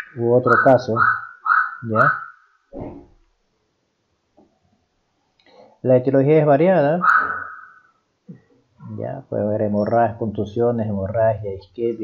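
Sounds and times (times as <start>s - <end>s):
man lecturing: 0.0s - 1.1s, 1.8s - 2.2s, 5.8s - 7.4s, 8.8s - 12.0s.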